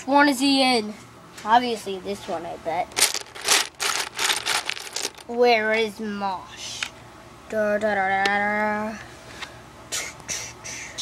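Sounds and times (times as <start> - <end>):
plastic figurines clattering in bucket: 2.9 - 5.4.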